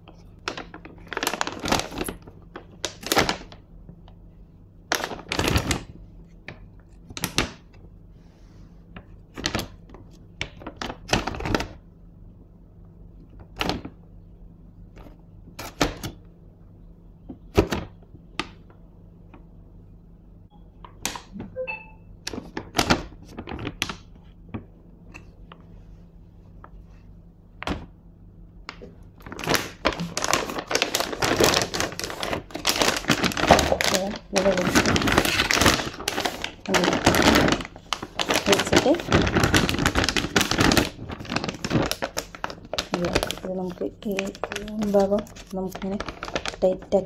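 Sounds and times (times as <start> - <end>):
plastic bag crackling: 0.3 - 3.7, 4.9 - 7.8, 9.0 - 11.8, 22.3 - 24.7, 28.7 - 47.0.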